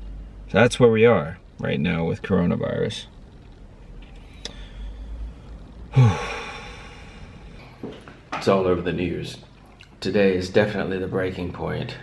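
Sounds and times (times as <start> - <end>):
man sighing: 5.9 - 7.8.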